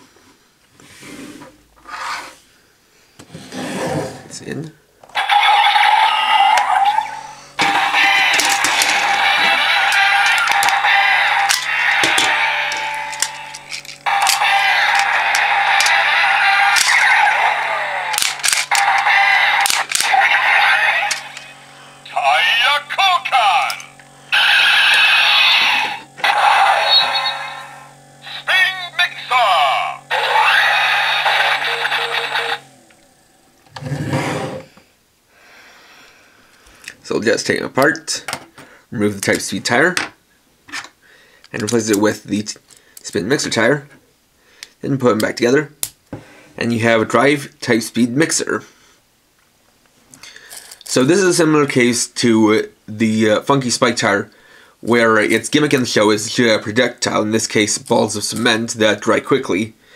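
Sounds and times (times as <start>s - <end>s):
toy belt electronic tunes: 5.2s - 33.0s
recorded voice calling out: 18.8s - 21.4s, 22.1s - 32.6s.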